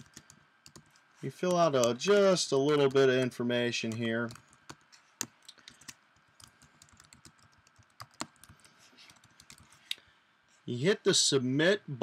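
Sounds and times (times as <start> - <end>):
computer keyboard typing: 0.0 - 9.8.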